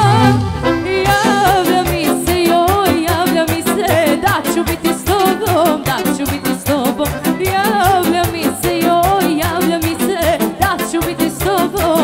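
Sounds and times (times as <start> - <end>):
drums and bass beat: 0.0 - 12.0
violin melody: 0.0 - 12.0.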